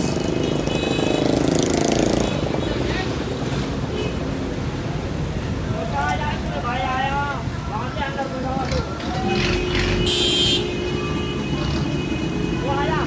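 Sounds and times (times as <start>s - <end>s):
low rumble of traffic: 0.0s - 13.0s.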